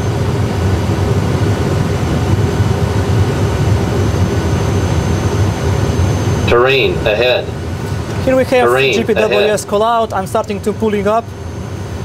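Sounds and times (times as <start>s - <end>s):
deep rumble of jet engines: 0.0s - 12.0s.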